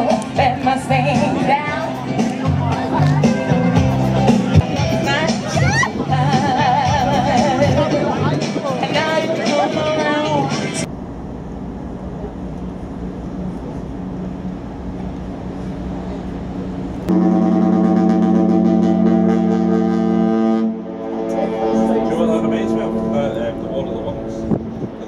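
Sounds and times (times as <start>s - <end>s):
harbour noise: 0.0s - 25.0s
wind noise: 4.5s - 17.1s, 21.7s - 25.0s
ship's horn blast: 17.1s - 25.0s.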